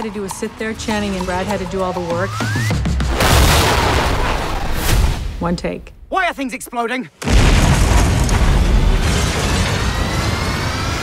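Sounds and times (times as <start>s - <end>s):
explosion boom: 3.1s - 5.4s.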